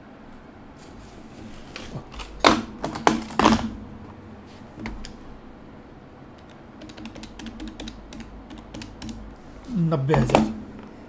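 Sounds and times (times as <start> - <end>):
keyboard key clicks: 6.4 - 9.2.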